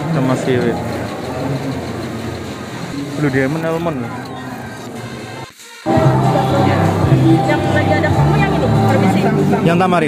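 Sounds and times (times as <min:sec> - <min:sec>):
rushing hum of shopping mall: 0:00.0 - 0:10.0.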